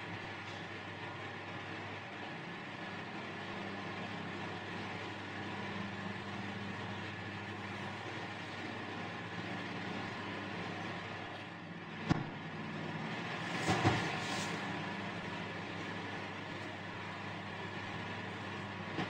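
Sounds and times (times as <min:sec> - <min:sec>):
electric cooling fans running: 0:00.0 - 0:19.0.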